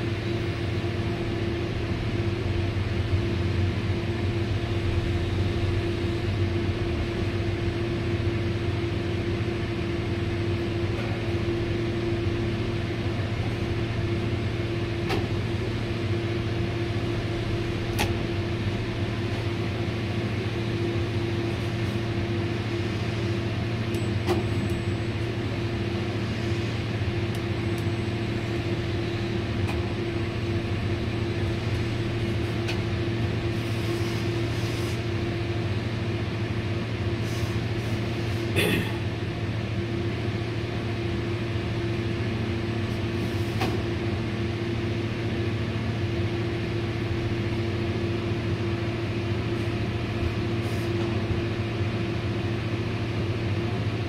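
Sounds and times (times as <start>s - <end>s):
crane machinery humming: 0.0s - 54.0s.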